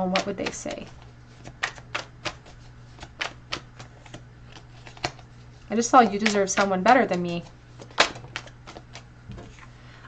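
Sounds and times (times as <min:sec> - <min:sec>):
playing cards being shuffled: 0:00.1 - 0:05.3, 0:05.9 - 0:09.7.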